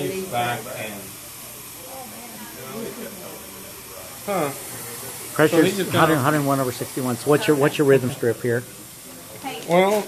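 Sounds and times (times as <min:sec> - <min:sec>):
faint voices murmuring: 0:00.0 - 0:10.0
steady hiss: 0:00.0 - 0:10.0.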